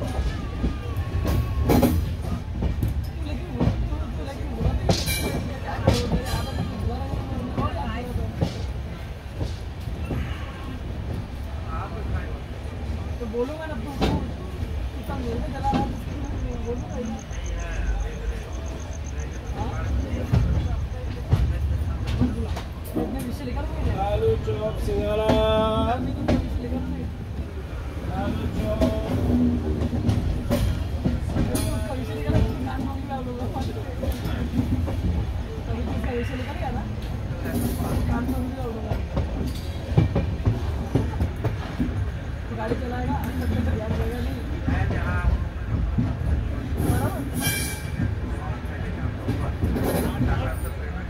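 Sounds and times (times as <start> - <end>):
people's voices: 0.0 - 51.0
train wheels rumbling on rail: 0.0 - 51.0.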